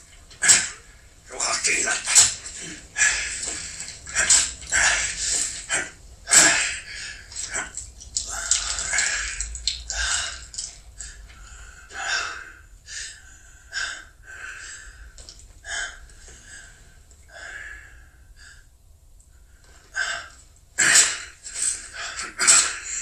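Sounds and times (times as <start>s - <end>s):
man breathing hard: 2.0s - 23.0s.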